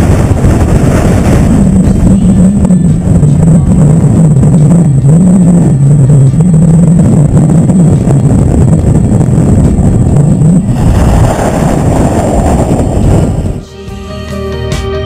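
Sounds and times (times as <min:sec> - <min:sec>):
strong wind buffeting microphone: 0:00.0 - 0:13.7.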